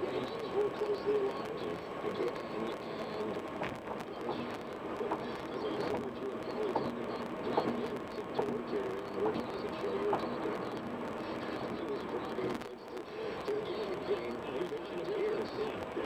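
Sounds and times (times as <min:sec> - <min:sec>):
talk radio voice: 0:00.0 - 0:16.0.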